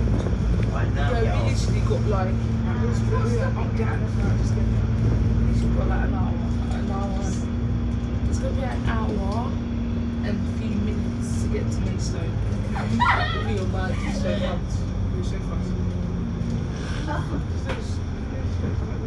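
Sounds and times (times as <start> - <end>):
bus engine drone: 0.0 - 19.0.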